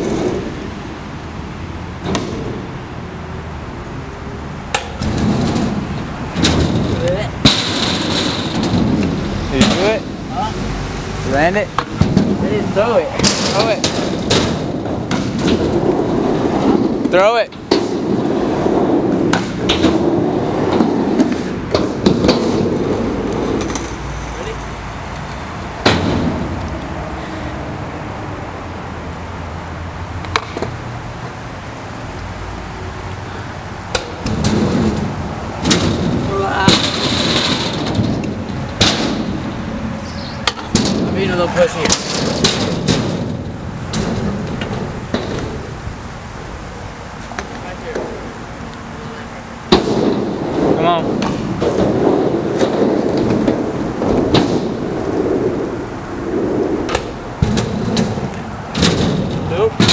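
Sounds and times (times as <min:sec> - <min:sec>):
scooter wheels rumbling on concrete: 0:00.0 - 0:59.9
scooter landing clacks and bangs: 0:04.7 - 0:10.1, 0:13.2 - 0:15.9, 0:19.0 - 0:24.0, 0:25.8 - 0:26.6, 0:33.9 - 0:39.7, 0:40.4 - 0:45.7, 0:56.9 - 0:59.9.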